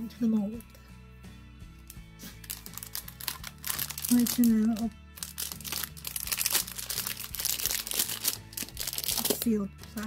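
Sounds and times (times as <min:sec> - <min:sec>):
quiet background music: 0:00.0 - 0:10.0
plastic packaging crinkling: 0:01.8 - 0:10.0.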